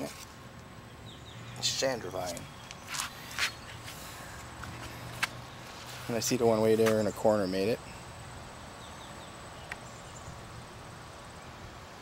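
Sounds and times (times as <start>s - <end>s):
footsteps on grass: 2.2s - 7.2s.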